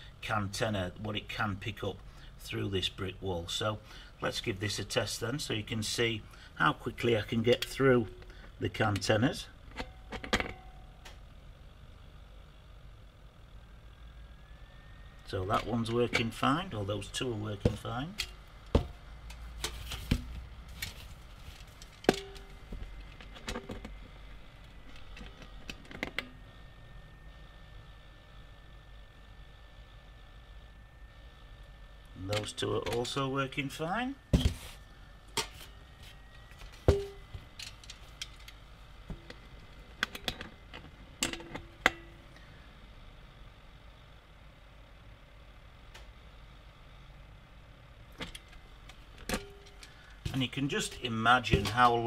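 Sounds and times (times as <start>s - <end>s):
faint thin whine: 0.0s - 52.0s
low background hum: 0.0s - 52.0s.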